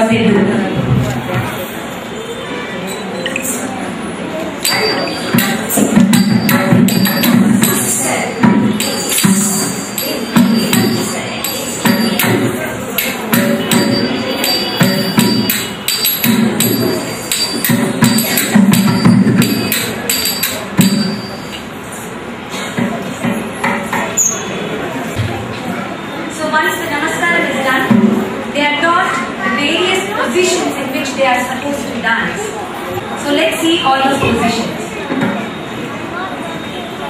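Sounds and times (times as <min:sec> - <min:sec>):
small hand cymbals clinking: 0:04.6 - 0:08.1, 0:08.8 - 0:21.6.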